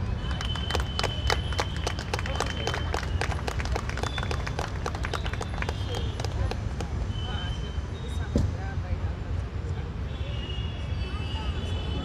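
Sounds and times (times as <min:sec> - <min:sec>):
audience clapping: 0:00.1 - 0:07.0.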